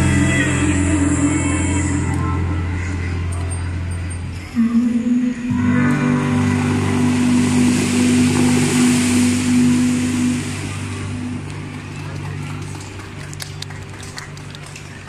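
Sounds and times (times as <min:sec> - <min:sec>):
crowd voices: 0:00.0 - 0:15.0
held music chord: 0:04.6 - 0:12.1
fountain water jets hissing: 0:06.2 - 0:15.0
sharp claps: 0:11.5 - 0:15.0.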